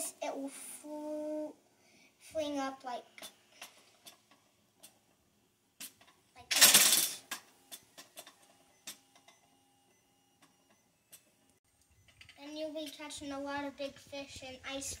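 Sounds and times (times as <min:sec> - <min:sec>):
frame clicks and rattles: 0:05.8 - 0:08.6.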